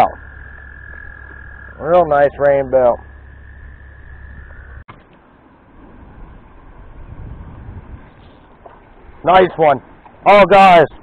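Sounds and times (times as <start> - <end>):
high-pitched frog trill: 0.0 - 4.9
low uneven rumble: 0.0 - 11.0.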